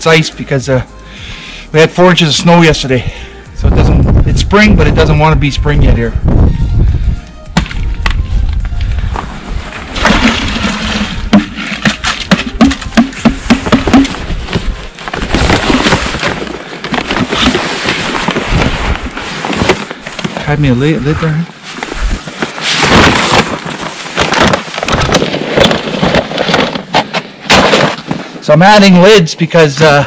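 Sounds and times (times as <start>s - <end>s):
plastic buckets clattering: 9.7s - 20.6s, 22.2s - 28.2s
snow crunching underfoot: 14.2s - 26.9s.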